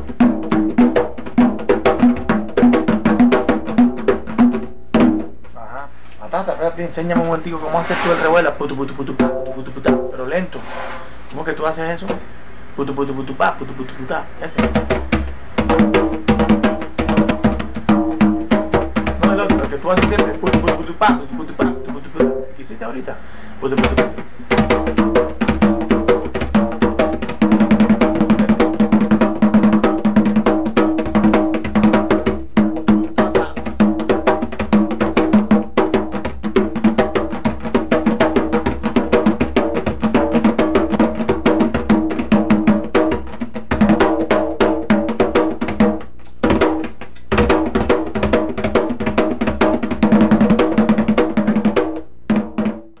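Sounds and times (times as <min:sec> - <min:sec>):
hand drum rhythm: 0:00.0 - 0:05.6, 0:06.9 - 0:10.4, 0:14.5 - 0:22.6, 0:23.6 - 0:53.0.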